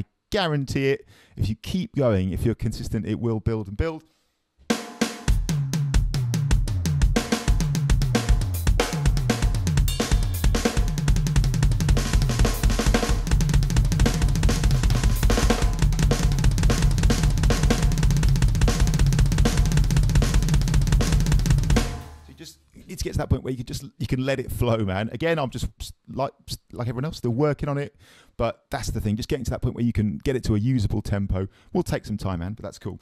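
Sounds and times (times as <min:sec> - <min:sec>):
electronic drum kit playing: 0:04.7 - 0:22.4.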